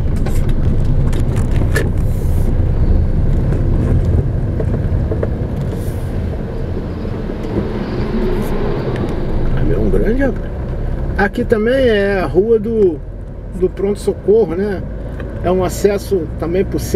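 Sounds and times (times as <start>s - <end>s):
car engine and tyres rumbling: 0.0s - 16.9s.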